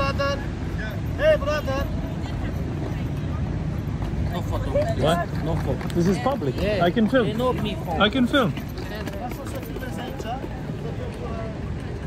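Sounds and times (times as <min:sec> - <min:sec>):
faint chatter of passers-by: 0:00.0 - 0:12.0.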